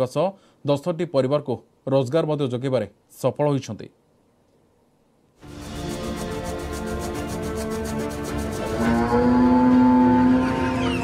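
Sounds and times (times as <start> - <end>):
cow mooing: 8.6 - 11.0.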